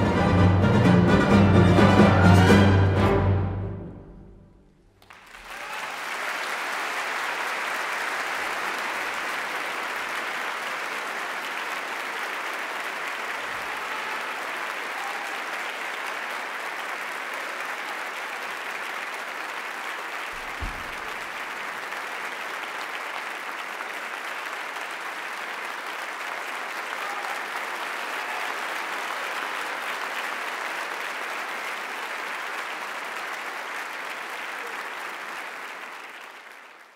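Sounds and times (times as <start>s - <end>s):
audience applauding: 4.9s - 36.9s
short low thump: 20.4s - 21.3s.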